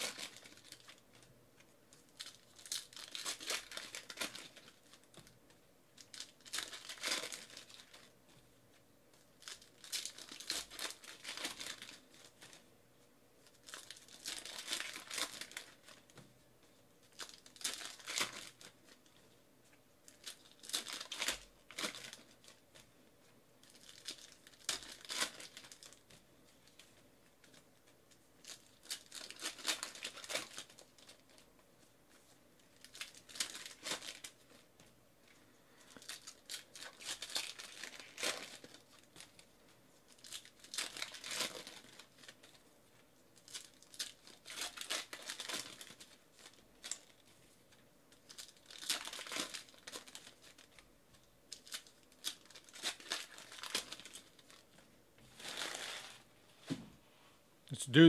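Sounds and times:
card pack wrappers tearing and crinkling: 0:00.0 - 0:01.2, 0:02.0 - 0:05.3, 0:06.0 - 0:08.1, 0:09.4 - 0:12.6, 0:13.4 - 0:16.1, 0:17.0 - 0:19.0, 0:20.0 - 0:22.9, 0:23.6 - 0:26.1, 0:28.4 - 0:31.4, 0:32.7 - 0:34.6, 0:35.8 - 0:42.6, 0:43.4 - 0:47.2, 0:48.1 - 0:50.8, 0:51.5 - 0:54.7, 0:55.3 - 0:56.3.

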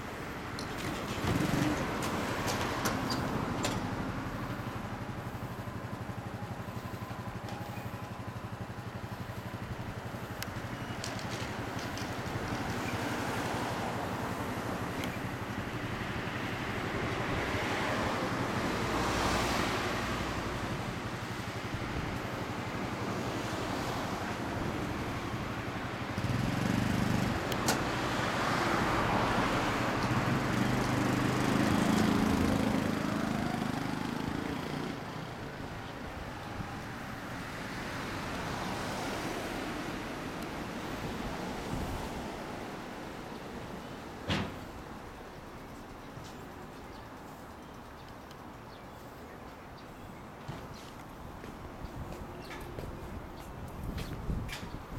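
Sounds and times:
scooter engine idling: 0:00.4 - 0:13.0.

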